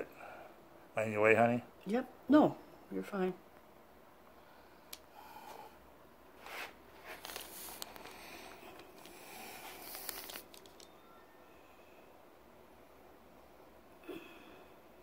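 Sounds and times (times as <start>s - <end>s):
low room hum: 0.0s - 15.0s
faint rustling and scuffing: 6.4s - 10.8s
small clicks: 9.8s - 11.0s.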